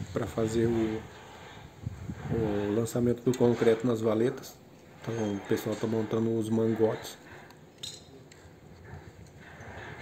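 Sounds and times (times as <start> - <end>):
distant voices of workers: 0.0 - 10.0.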